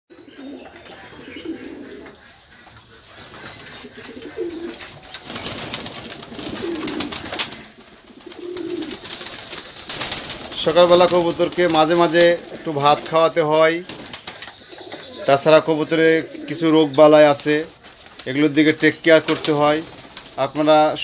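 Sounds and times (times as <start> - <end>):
pigeons cooing: 0.1 - 21.0
wings fluttering and scuffling: 0.4 - 21.0.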